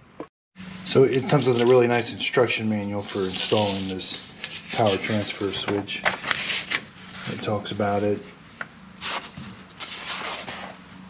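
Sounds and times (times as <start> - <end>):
paper pages rustling: 1.2 - 2.1, 2.8 - 7.6, 9.0 - 10.9.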